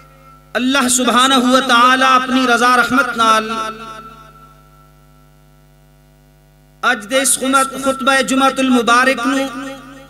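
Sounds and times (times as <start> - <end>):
electrical mains hum: 0.0 - 10.0
man talking: 0.6 - 3.9, 6.8 - 9.8.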